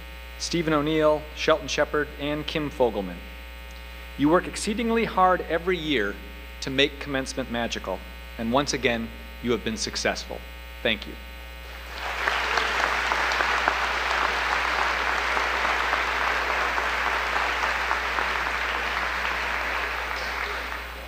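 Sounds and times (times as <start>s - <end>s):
low mains hum: 0.0s - 21.0s
audience applauding: 11.7s - 21.0s.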